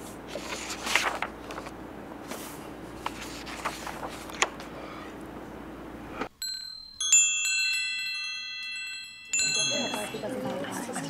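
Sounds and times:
steady room hum: 0:00.0 - 0:11.0
shimmering wind chimes: 0:06.4 - 0:10.6.

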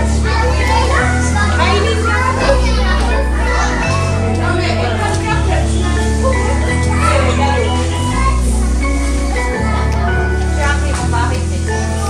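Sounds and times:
background music with bass chords: 0:00.0 - 0:12.0
young children chattering: 0:00.0 - 0:12.0.

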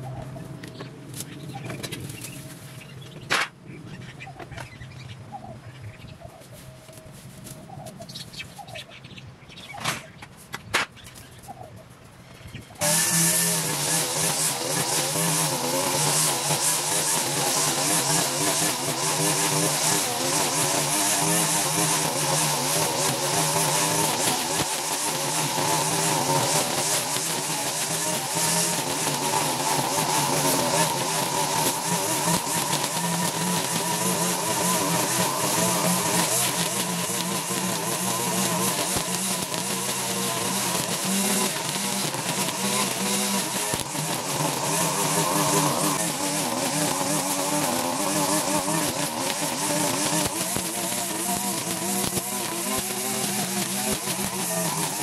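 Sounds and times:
trimmer line cutting grass: 0:00.0 - 0:03.5, 0:12.8 - 0:55.0
string trimmer engine running: 0:12.8 - 0:55.0.

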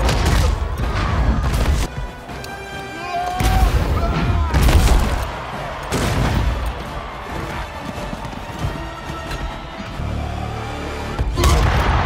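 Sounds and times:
orchestral film score: 0:00.0 - 0:12.0.

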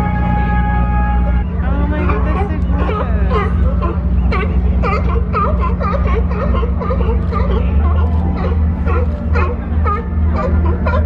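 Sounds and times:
background music: 0:00.0 - 0:11.0
people's voices: 0:00.0 - 0:11.0
steady low rumble: 0:00.0 - 0:11.0
sea lions barking: 0:00.2 - 0:11.0.

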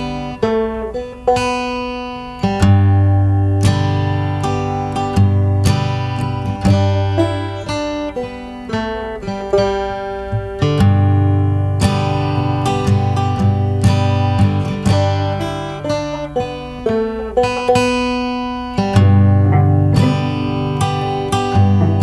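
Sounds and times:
acoustic guitar playing: 0:00.0 - 0:22.0.

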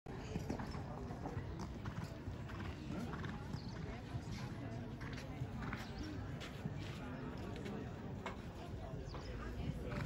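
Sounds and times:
horse hoofbeats on sand: 0:00.2 - 0:10.0.

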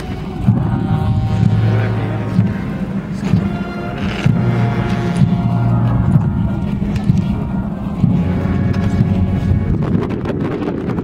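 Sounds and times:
low brass notes: 0:00.0 - 0:11.0
military band march: 0:00.0 - 0:11.0.

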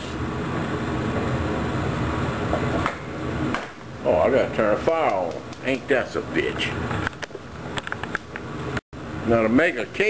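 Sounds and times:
fan-like room hum and hiss: 0:00.0 - 0:10.0.

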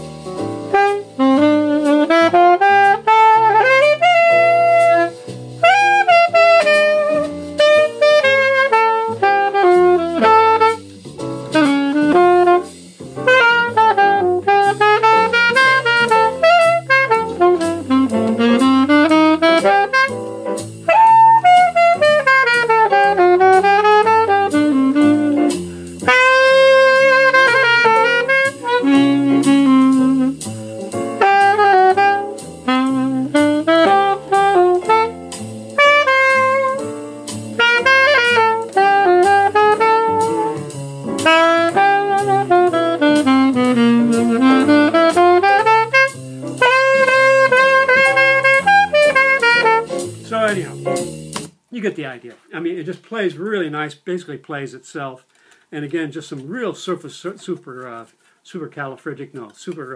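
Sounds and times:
alto saxophone jazz melody: 0:00.0 - 0:54.0
steady beat with bass line: 0:00.0 - 0:54.0.

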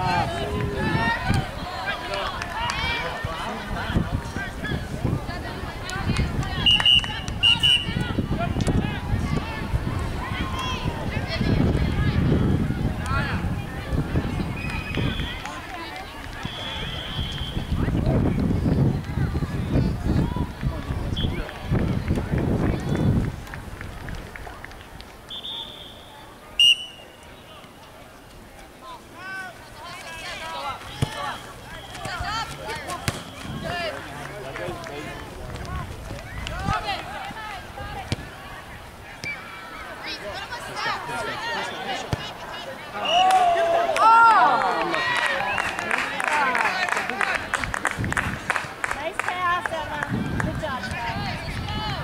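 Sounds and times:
spectators talking: 0:00.0 - 0:52.0
distant shouts of people: 0:04.7 - 0:18.0, 0:25.3 - 0:27.9, 0:28.9 - 0:47.5
referee's whistle blasts: 0:06.6 - 0:08.0, 0:16.4 - 0:17.7, 0:25.3 - 0:27.6, 0:31.1 - 0:32.2, 0:43.0 - 0:43.4.

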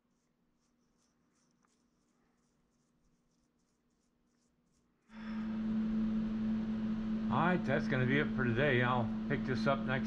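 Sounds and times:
paintbrush strokes: 0:00.0 - 0:05.1
faint steady hum: 0:00.0 - 0:10.0.

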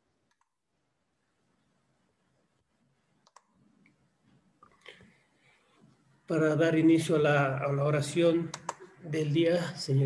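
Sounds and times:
faint room hiss: 0:00.0 - 0:10.0
faint clicks: 0:03.2 - 0:05.2.

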